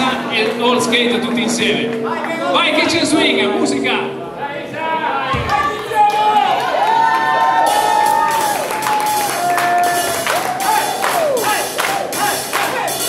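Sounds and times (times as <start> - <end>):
swing band music: 0.0 - 4.7
crowd cheering and clapping: 5.3 - 13.0.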